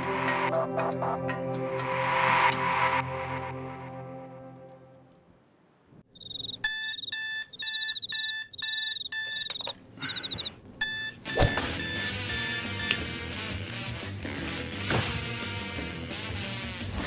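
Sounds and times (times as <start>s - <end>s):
music: 0.0s - 5.3s, 11.4s - 17.0s
alarm clock beeping: 6.1s - 13.0s.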